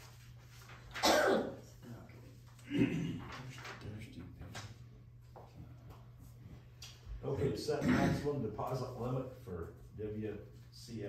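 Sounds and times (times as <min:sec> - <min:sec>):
person clearing throat: 0:01.0 - 0:01.6, 0:02.6 - 0:03.4, 0:07.8 - 0:08.4
person coughing: 0:01.0 - 0:01.6, 0:02.6 - 0:03.3, 0:07.8 - 0:08.4.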